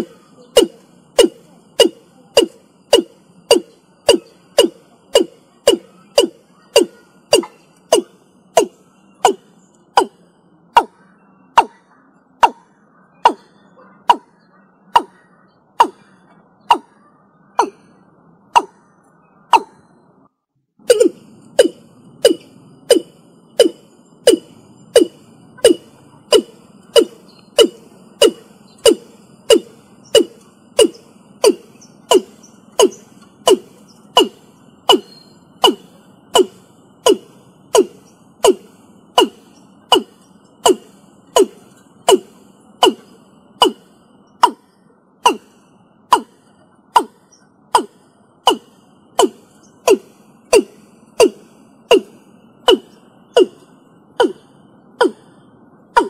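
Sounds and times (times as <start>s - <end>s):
bird calling low hollow notes: 0.0s - 56.0s.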